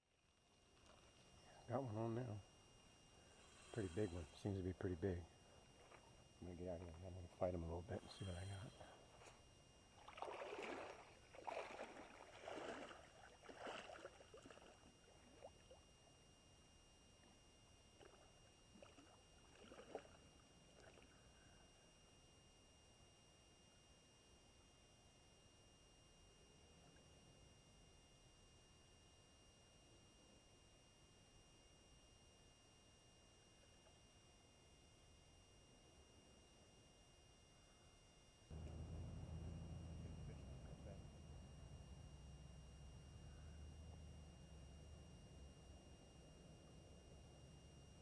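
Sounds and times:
faint hiss with high whine: 0:00.0 - 0:48.0
low rumble: 0:38.5 - 0:46.0.

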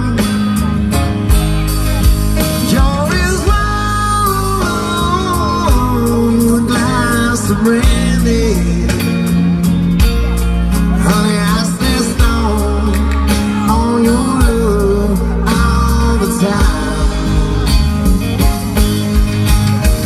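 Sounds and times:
person singing: 0:00.0 - 0:09.4, 0:10.8 - 0:18.3
live band playing country ballad: 0:00.0 - 0:20.0.

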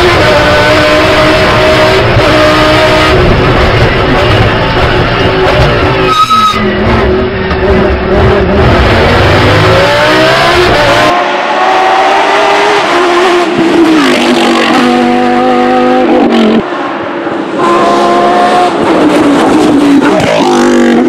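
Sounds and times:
racing car engine revving: 0:00.0 - 0:06.0, 0:06.7 - 0:16.7.

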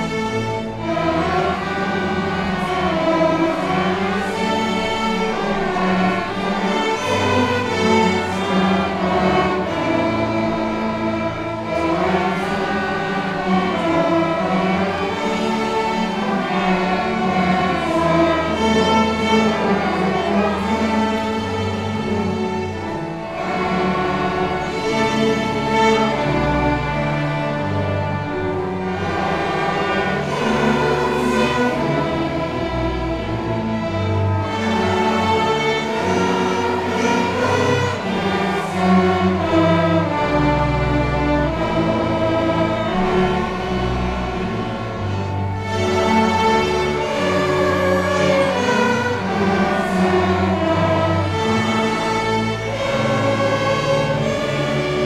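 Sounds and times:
string orchestra sustained chords: 0:00.0 - 0:55.0
voices singing along: 0:00.0 - 0:55.0.

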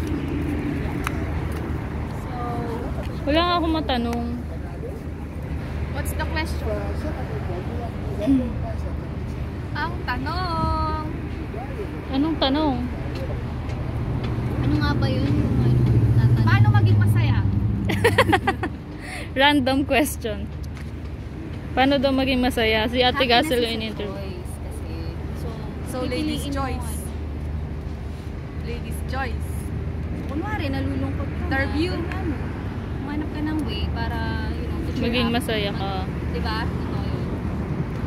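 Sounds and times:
low outdoor rumble: 0:00.0 - 0:38.0
woman speaking: 0:02.2 - 0:04.4, 0:21.8 - 0:27.1, 0:33.0 - 0:37.3.

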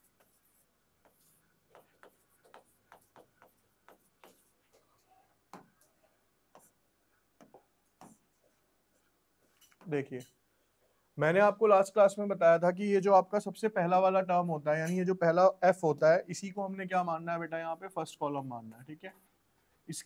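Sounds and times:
pen tapping on screen: 0:01.0 - 0:04.9, 0:07.4 - 0:08.2.

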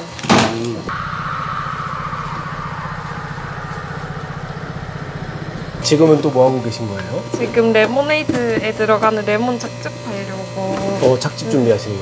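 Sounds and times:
machine motor pulsing and humming: 0:00.9 - 0:09.4.

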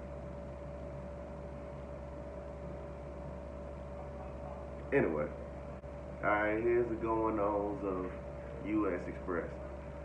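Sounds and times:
faint whine: 0:00.0 - 0:10.0
low room hum: 0:00.0 - 0:10.0.

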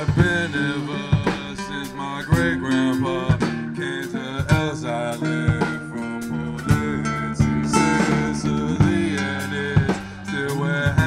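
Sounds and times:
acoustic guitar playing: 0:00.0 - 0:11.0
drums in a slow beat: 0:00.0 - 0:11.0.

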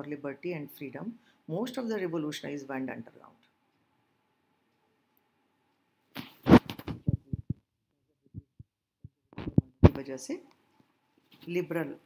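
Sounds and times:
low thumps: 0:06.2 - 0:07.6, 0:08.4 - 0:10.0.

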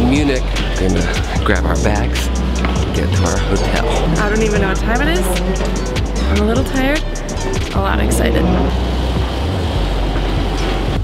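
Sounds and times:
low rumble with rattling: 0:00.0 - 0:11.0.

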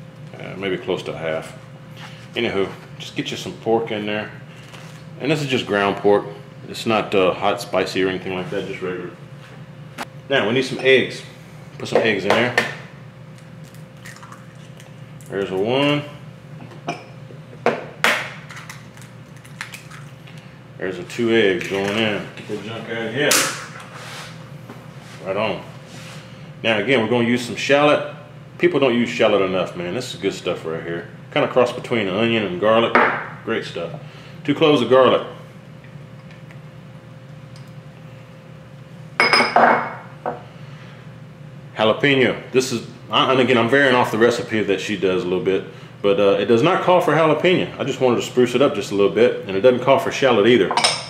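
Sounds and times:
steady low hum: 0:00.0 - 0:51.0
egg shell crackling open: 0:18.5 - 0:20.4
glass bowl clinking: 0:39.2 - 0:40.0, 0:50.7 - 0:51.0.

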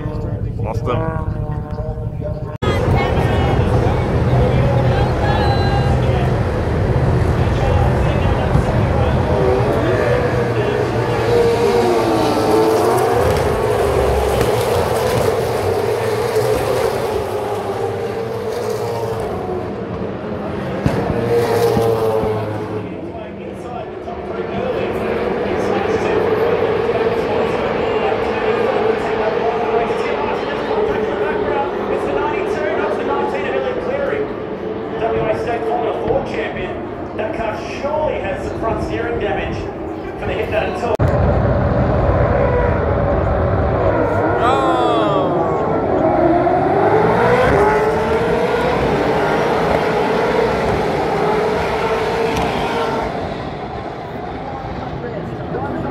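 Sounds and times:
pa commentary: 0:00.0 - 0:13.7, 0:22.6 - 0:41.0, 0:44.2 - 0:46.0
race car engines: 0:00.0 - 0:55.9.

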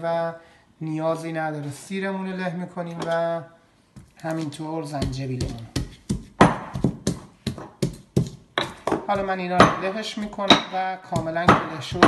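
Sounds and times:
pestle pounding in a mortar: 0:05.0 - 0:12.0.

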